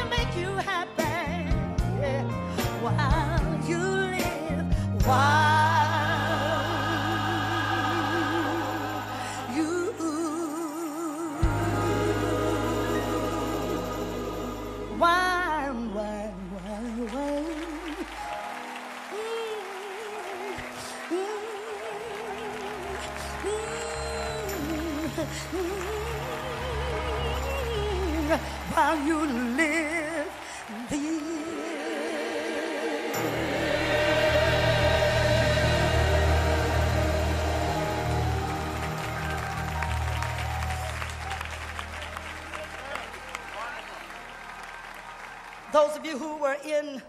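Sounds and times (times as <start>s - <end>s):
live gospel music: 0.0s - 47.0s
audience applause: 16.5s - 46.6s.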